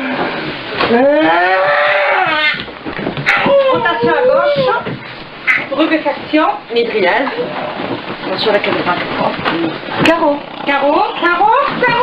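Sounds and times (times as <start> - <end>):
woman screaming: 3.3 - 4.9.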